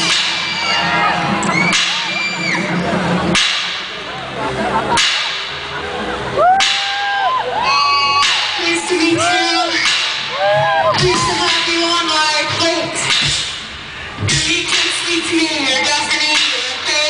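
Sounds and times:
loud electronic music: 0.0s - 17.0s.

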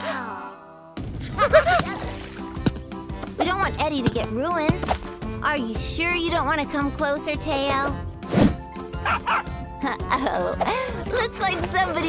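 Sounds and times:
background music: 0.0s - 12.0s
cartoon puppy barking and yipping: 9.0s - 9.6s.

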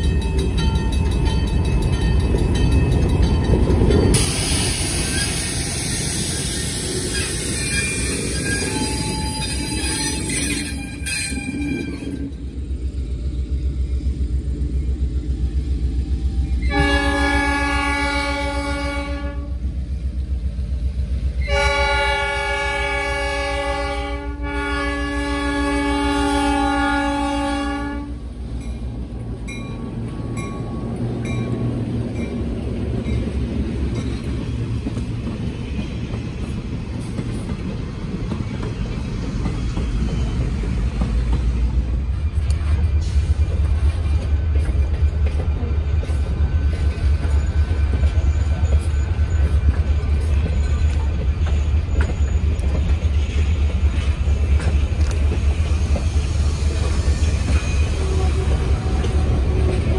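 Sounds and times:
diesel locomotive rumbling: 0.0s - 59.9s
locomotive horn blasts: 16.6s - 19.6s, 21.4s - 28.2s, 57.9s - 59.9s.

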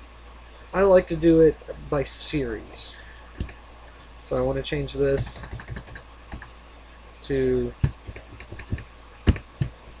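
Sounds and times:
computer keyboard typing: 5.2s - 6.5s, 7.8s - 10.0s.

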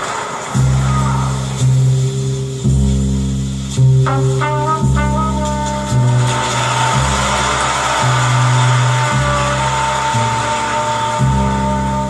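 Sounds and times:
record hiss: 0.0s - 12.0s
slow bass notes: 0.6s - 12.0s
horn holding long note: 4.0s - 12.0s.

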